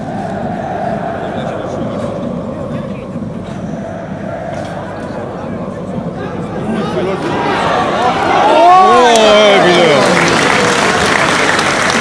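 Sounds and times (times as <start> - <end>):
steady hum: 0.0 - 9.6
indistinct crowd voices: 0.0 - 12.0.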